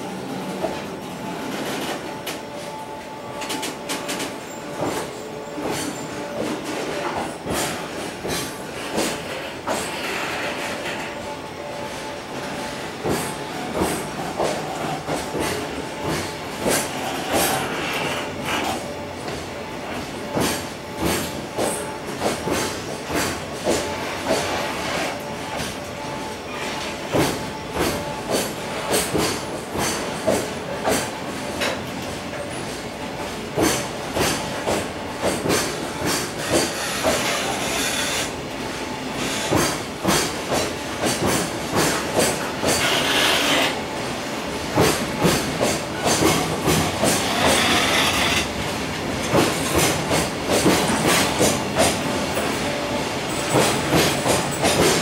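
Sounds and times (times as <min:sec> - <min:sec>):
train rolling rumble: 0:00.0 - 0:55.0
train wheels clattering over rail joints: 0:03.4 - 0:11.2, 0:12.5 - 0:19.4, 0:20.3 - 0:25.8, 0:26.7 - 0:38.4, 0:39.2 - 0:43.8, 0:44.7 - 0:55.0.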